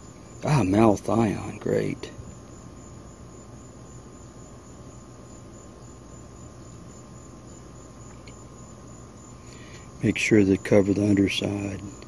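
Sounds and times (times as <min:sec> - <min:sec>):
faint insect drone: 0:00.0 - 0:12.0
low hiss: 0:00.0 - 0:12.0.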